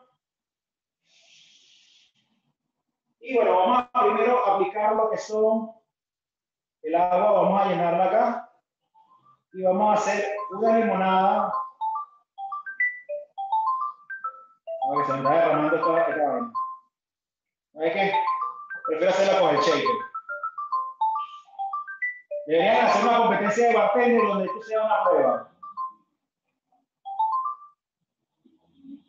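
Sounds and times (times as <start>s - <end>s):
phone ringtone rising notes: 8.9s - 17.0s, 17.8s - 26.2s, 27.0s - 27.9s.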